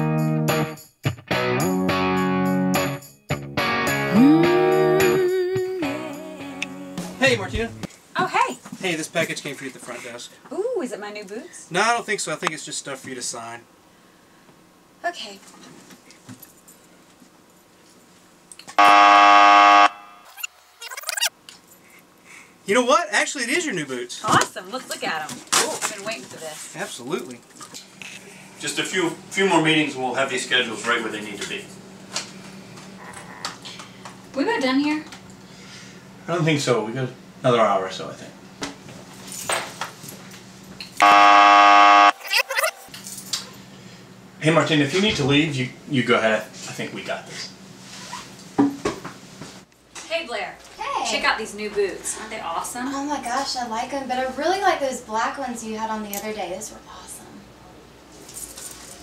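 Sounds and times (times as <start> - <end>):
wrong-answer buzzer: 18.8 - 20.5, 41.0 - 42.9.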